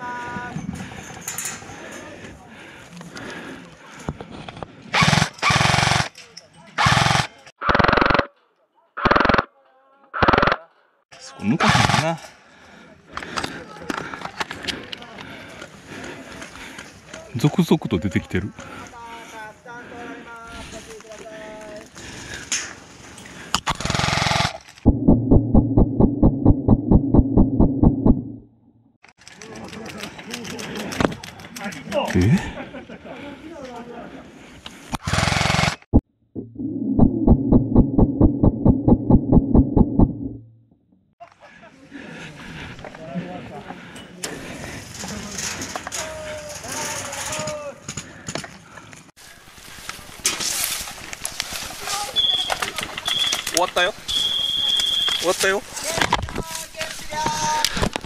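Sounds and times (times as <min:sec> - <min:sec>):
airsoft gun full-auto bursts: 0:05.0 - 0:06.1, 0:06.8 - 0:08.3, 0:09.0 - 0:09.5, 0:23.7 - 0:24.6, 0:35.1 - 0:35.9
slowed gunshots as deep knocks: 0:23.8 - 0:28.4, 0:37.0 - 0:40.4
rustling in dry brush: 0:49.2 - 0:53.0.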